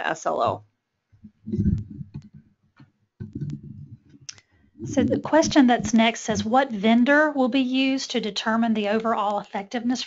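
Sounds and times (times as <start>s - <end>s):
soft low thumping: 0.4s - 6.6s.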